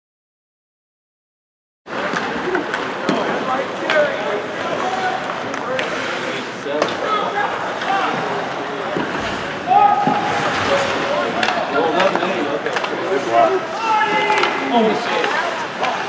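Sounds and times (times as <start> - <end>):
spectators' voices: 1.9 - 16.0
sharp clacks from hockey play: 11.4 - 13.1, 14.1 - 16.0.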